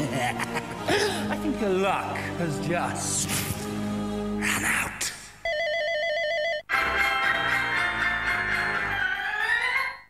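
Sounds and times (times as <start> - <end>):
advert music: 0.0 - 5.4, 6.6 - 10.0
mobile phone ringing: 5.4 - 6.8.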